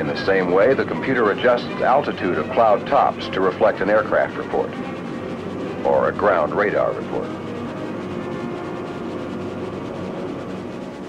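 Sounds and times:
propeller aircraft engines droning: 0.0 - 11.0.

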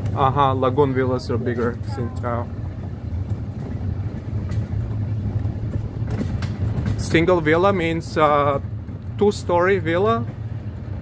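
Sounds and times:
golf cart rumbling on pavement: 0.0 - 11.0.

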